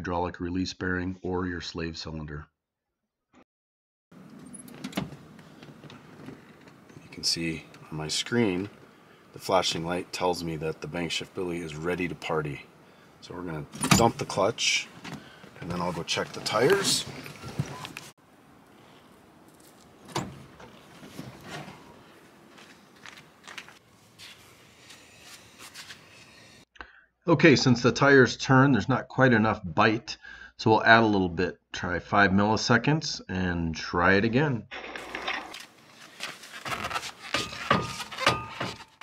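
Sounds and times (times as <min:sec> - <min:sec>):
faint outdoor background: 0:04.1 - 0:39.0
footsteps: 0:19.5 - 0:26.6
gloved hands scuffing a tire: 0:20.8 - 0:26.6, 0:35.8 - 0:38.1.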